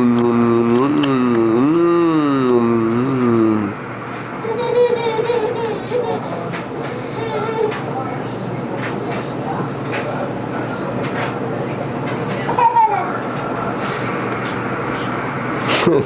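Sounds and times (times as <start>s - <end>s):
steady background hum: 0.0s - 16.0s
baby humming and whining: 4.4s - 6.4s.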